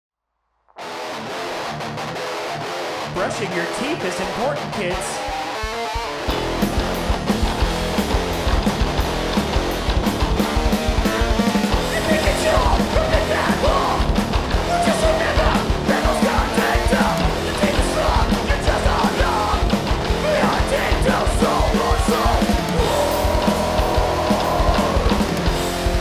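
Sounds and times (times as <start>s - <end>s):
rock band with electric guitars: 0.7s - 26.0s
yelled lead vocals: 2.6s - 26.0s.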